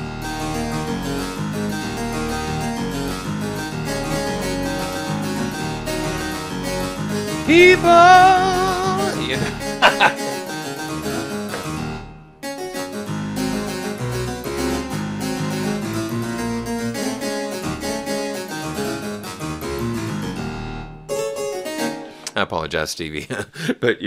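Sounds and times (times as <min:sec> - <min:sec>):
harpsichord with synth pad: 0:00.0 - 0:11.7, 0:12.4 - 0:20.1
fast harpsichord run of notes: 0:00.0 - 0:22.3.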